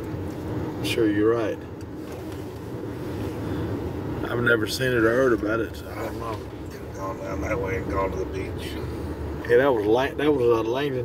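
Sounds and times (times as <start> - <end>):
car driving heard from inside: 0.0 - 11.0.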